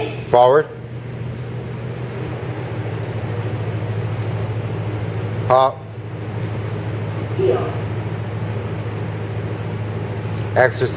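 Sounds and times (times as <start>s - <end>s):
low mechanical hum: 0.0s - 10.9s.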